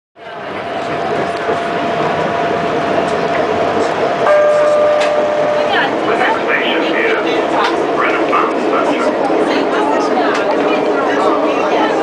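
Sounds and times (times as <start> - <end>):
train rolling rumble: 0.2 - 12.0
thin steady whine: 1.1 - 8.4
strong steady tone: 4.2 - 8.3.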